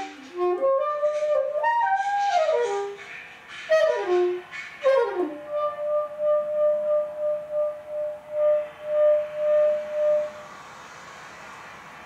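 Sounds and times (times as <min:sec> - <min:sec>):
wind instrument holding a note: 0:00.0 - 0:03.0, 0:03.7 - 0:10.4.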